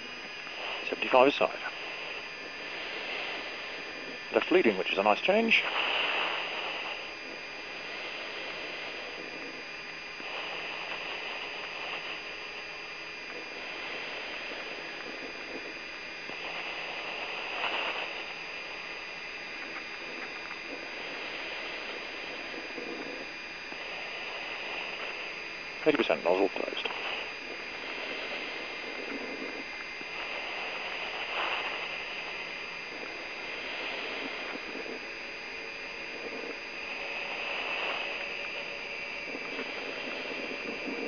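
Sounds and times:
faint high whine: 0.0 - 41.0
radio intercom hiss and hum: 0.0 - 41.0.

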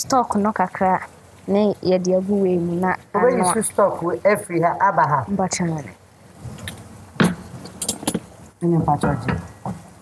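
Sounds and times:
person speaking: 0.0 - 6.0.

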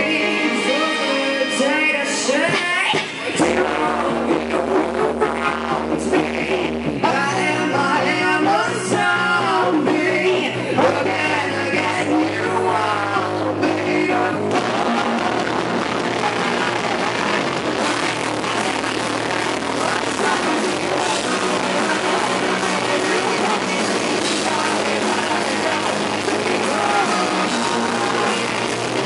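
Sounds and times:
female lead vocal: 0.0 - 15.1, 16.2 - 29.0
bass line: 0.0 - 29.0
electric guitar: 0.0 - 29.0
heavy rock band playing: 0.0 - 29.0
steady drum beat: 13.9 - 29.0.

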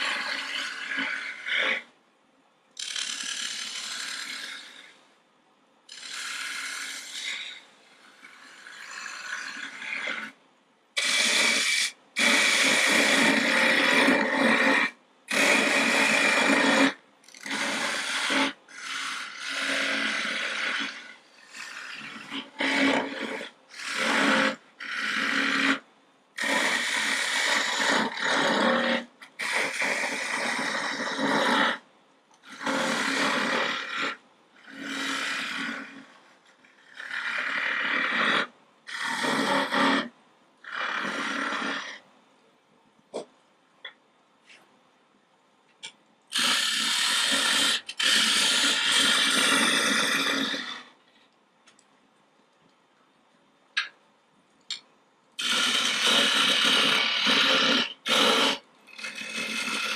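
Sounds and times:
lathe tool cutting wood: 0.0 - 1.8, 5.9 - 10.3, 11.0 - 25.8, 32.5 - 36.1, 55.4 - 59.9.

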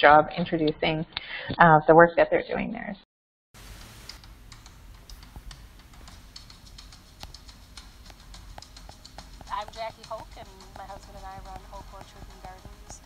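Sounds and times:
woman speaking: 0.0 - 3.0, 9.5 - 13.0
apples knocking together: 8.1 - 13.0.

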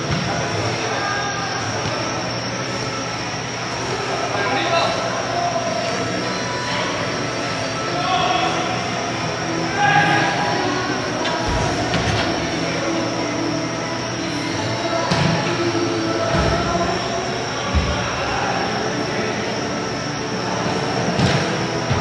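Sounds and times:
steady hum: 0.0 - 22.0.

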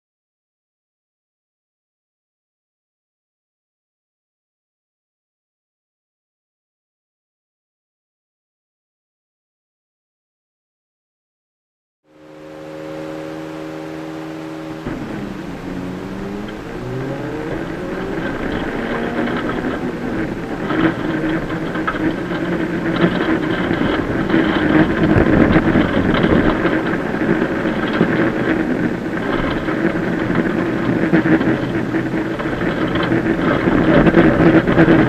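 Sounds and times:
car engine revving: 12.1 - 35.0
gravel rattling under car: 12.2 - 35.0.

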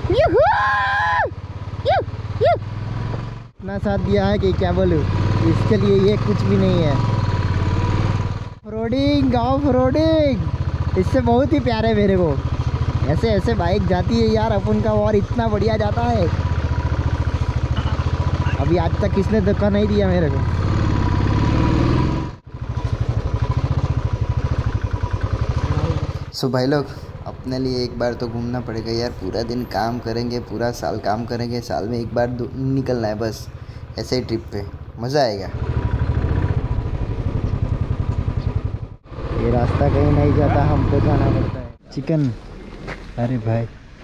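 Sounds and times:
high vocal whoops: 0.1 - 2.6
motorcycle engine running: 1.2 - 41.8.

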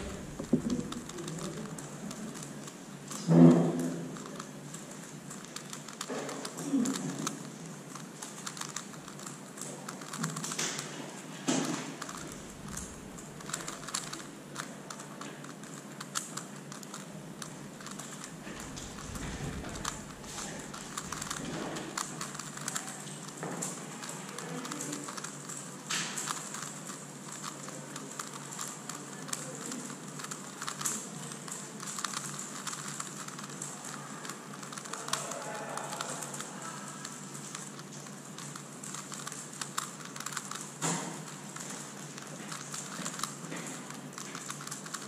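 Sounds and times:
plastic puzzle clicking: 0.0 - 45.0.

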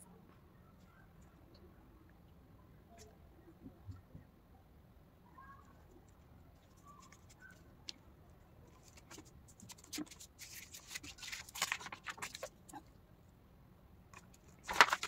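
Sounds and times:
paper card rustling and crackling: 6.6 - 7.6, 8.7 - 12.8, 14.2 - 15.0.

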